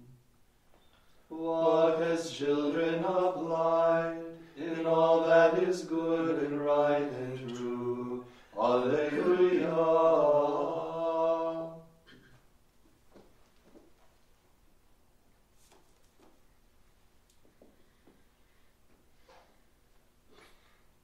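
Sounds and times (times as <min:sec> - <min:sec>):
men singing plainchant: 0:01.3 - 0:11.9.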